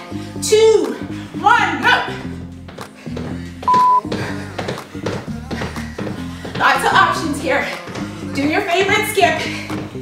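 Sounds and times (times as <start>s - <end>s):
upbeat workout music: 0.0s - 10.0s
short electronic timer beep: 3.7s - 4.0s.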